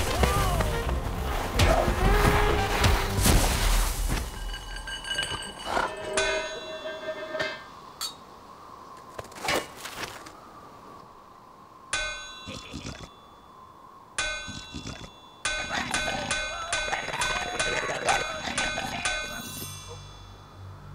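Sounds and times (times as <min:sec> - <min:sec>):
metal pots clanging: 0:04.1 - 0:08.2.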